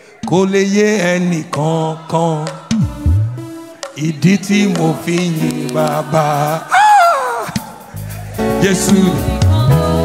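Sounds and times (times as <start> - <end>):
man chanting into a microphone: 0.2 - 2.6.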